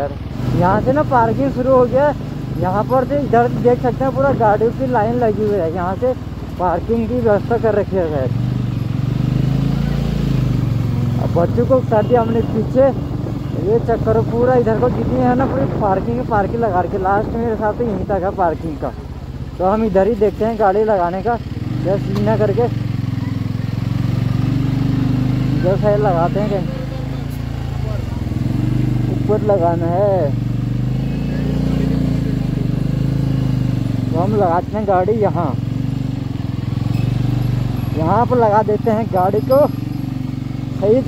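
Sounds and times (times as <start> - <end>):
motorcycle engine running: 0.0 - 41.0
road and wind noise: 0.0 - 41.0.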